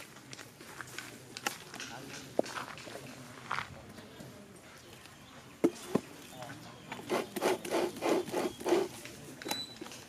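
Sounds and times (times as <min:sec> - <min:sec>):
hands scraping perforated metal plate: 0:07.0 - 0:09.1.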